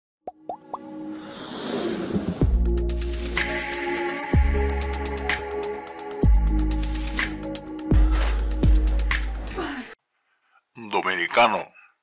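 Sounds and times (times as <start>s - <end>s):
whoosh with musical tones: 1.0s - 2.7s.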